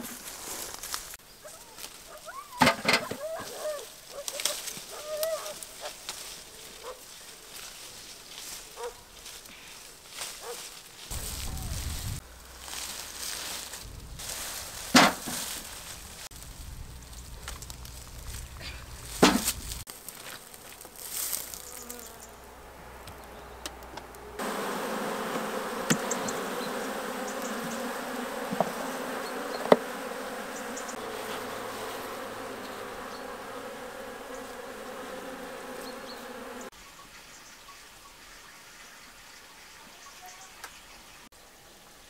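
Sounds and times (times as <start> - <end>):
honeybees buzzing: 0.0 - 36.7.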